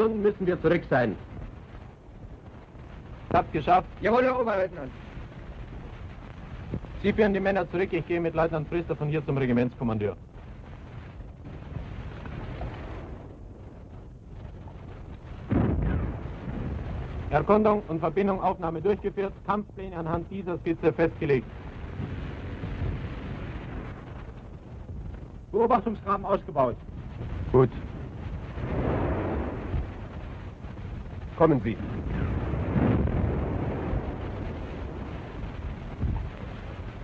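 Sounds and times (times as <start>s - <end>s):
heavy explosion: 0.0s - 37.0s
low rumble: 0.0s - 37.0s
steady low background noise: 0.0s - 37.0s.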